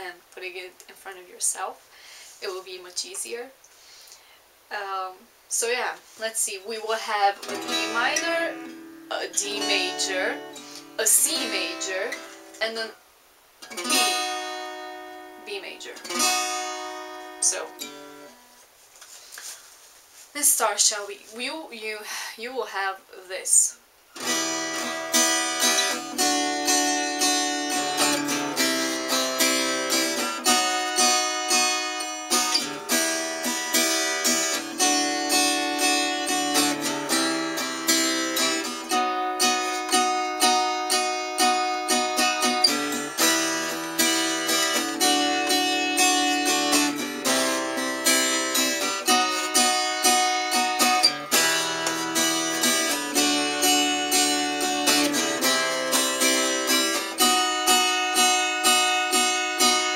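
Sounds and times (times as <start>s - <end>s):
acoustic guitar strumming: 5.7s - 13.0s, 13.6s - 18.6s, 24.1s - 59.9s.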